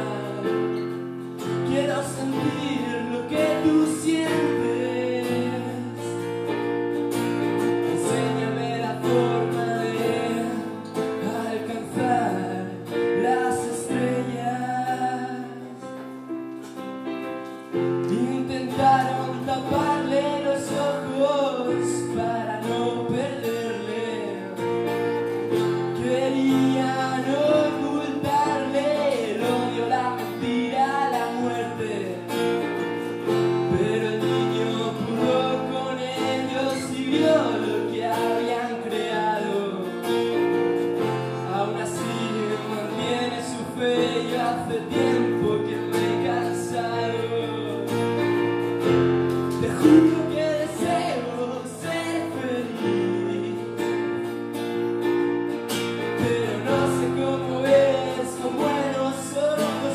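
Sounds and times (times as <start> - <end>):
person singing: 0.0 - 6.9, 7.5 - 16.6, 17.7 - 54.3, 55.8 - 59.9
acoustic guitar and keyboard: 0.0 - 59.9.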